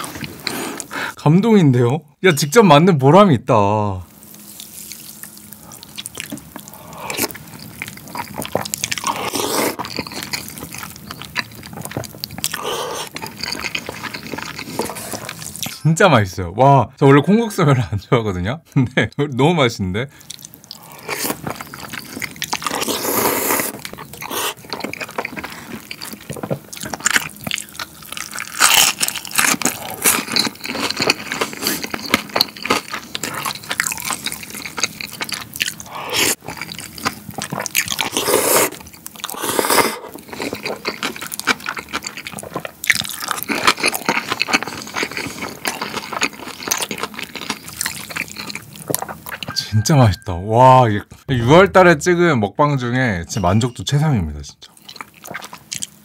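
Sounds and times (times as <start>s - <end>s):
noodles slurped: 0.0s - 0.9s, 4.2s - 15.8s, 20.3s - 49.5s
chewing and mouth sounds: 4.2s - 15.8s, 20.2s - 49.8s, 54.7s - 56.0s.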